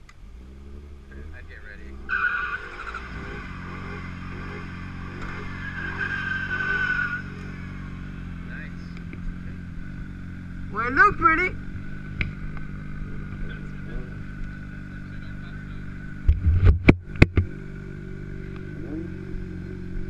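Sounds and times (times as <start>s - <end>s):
car tyres screeching: 0.0s - 20.0s
engine idling: 0.0s - 20.0s.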